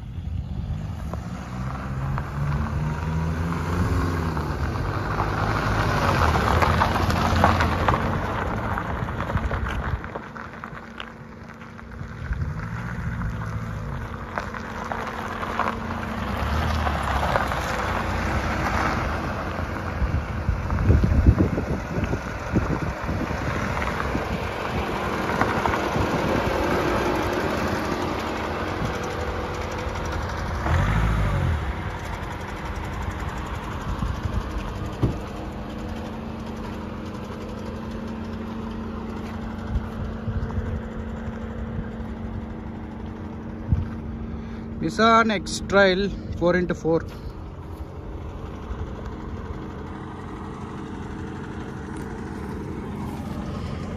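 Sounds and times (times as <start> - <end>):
diesel engine running: 0.0 - 53.9
tyres rolling over gravel: 0.8 - 53.9.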